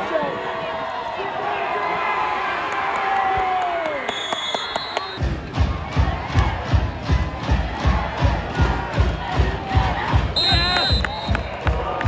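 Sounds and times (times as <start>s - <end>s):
crowd noise: 0.0s - 12.0s
shrill whistle: 4.1s - 5.2s, 10.4s - 11.5s
bass drum beating: 5.2s - 12.0s.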